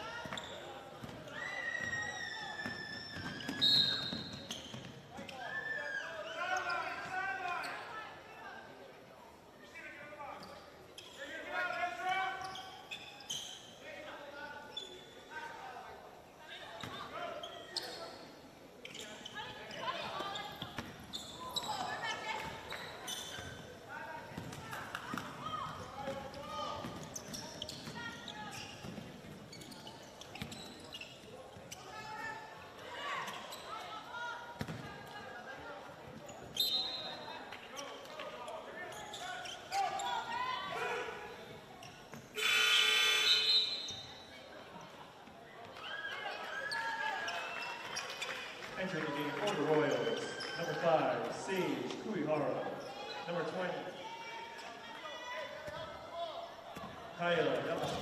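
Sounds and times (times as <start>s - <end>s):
players' voices: 13.7s - 58.0s
scoreboard horn: 42.4s - 43.5s.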